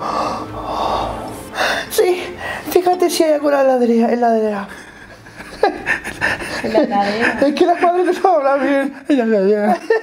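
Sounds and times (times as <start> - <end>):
person breathing out: 0.0 - 2.7.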